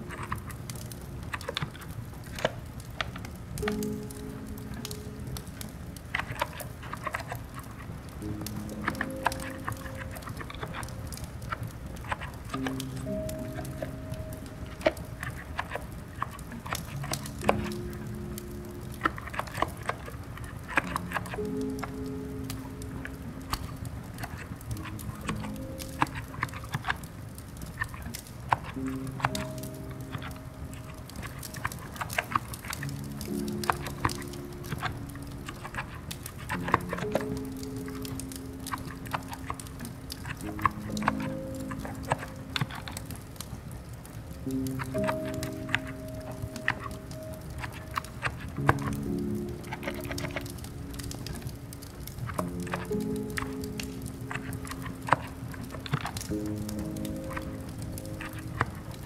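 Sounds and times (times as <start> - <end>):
soft slow background music: 0.0 - 59.0.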